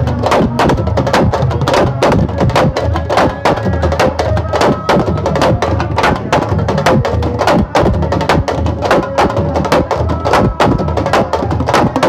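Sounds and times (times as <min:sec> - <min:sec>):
hand drums playing fast rhythm: 0:00.0 - 0:12.0.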